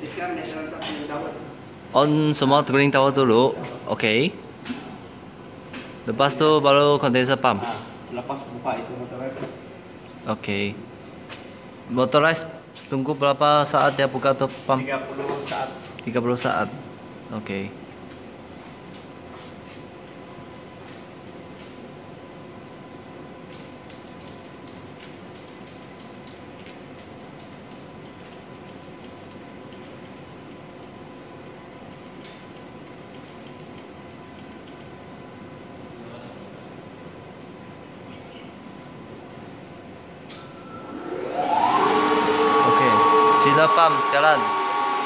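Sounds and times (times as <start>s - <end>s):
machinery hum: 36.6s - 45.0s
electric pump motor whine: 40.4s - 45.0s.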